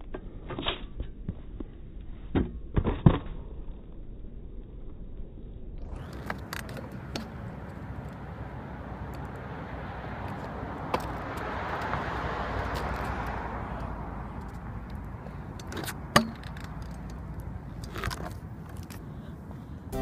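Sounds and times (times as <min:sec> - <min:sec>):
car passing: 0:05.8 - 0:20.0.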